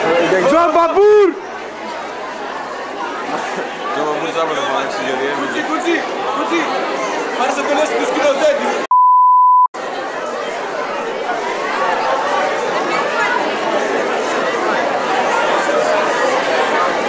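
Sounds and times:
crowd babble: 0:00.0 - 0:17.0
steady high beep: 0:08.9 - 0:09.7.

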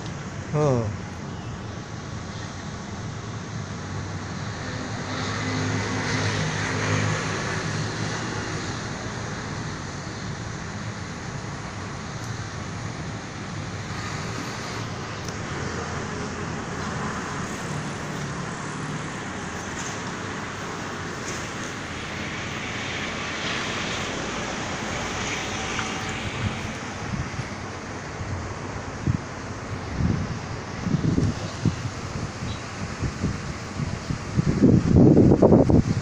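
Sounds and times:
street traffic noise: 0:00.0 - 0:36.0.

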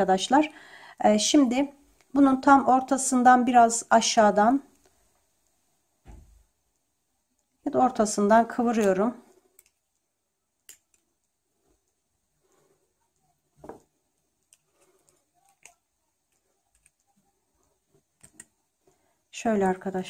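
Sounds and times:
pliers clicking and bending wire: 0:08.7 - 0:10.0, 0:10.6 - 0:11.3, 0:14.4 - 0:17.1.

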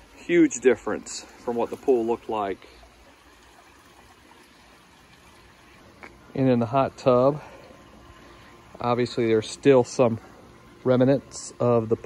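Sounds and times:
pool water trickling: 0:00.0 - 0:12.0.

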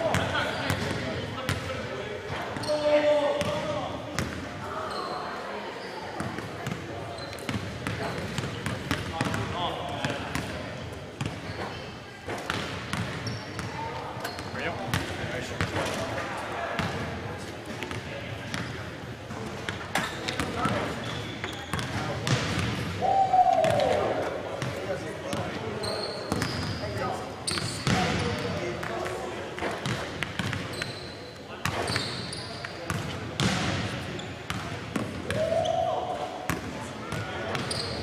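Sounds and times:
basketballs bouncing on gym floor: 0:03.4 - 0:04.4, 0:07.4 - 0:10.6, 0:12.3 - 0:13.8, 0:14.4 - 0:15.8, 0:21.4 - 0:22.9, 0:27.5 - 0:30.9, 0:32.8 - 0:33.9, 0:34.5 - 0:35.5
short high squeaks: 0:30.7 - 0:31.2.

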